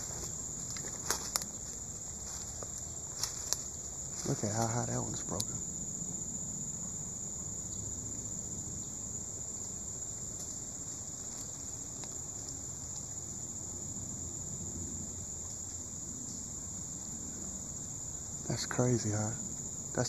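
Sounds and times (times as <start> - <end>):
high-pitched insect chorus: 0.0 - 20.0.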